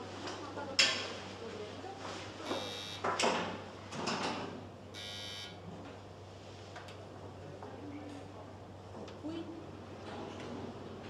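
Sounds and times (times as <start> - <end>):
low steady room hum: 1.3 - 3.2, 4.8 - 11.0
short buzz: 2.5 - 3.1, 5.0 - 5.6.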